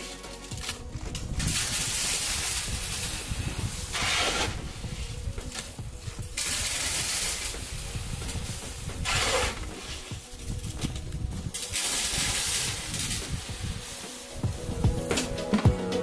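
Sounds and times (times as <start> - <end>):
shovel scooping gravel: 0.0 - 5.7, 6.3 - 10.8, 11.5 - 14.3.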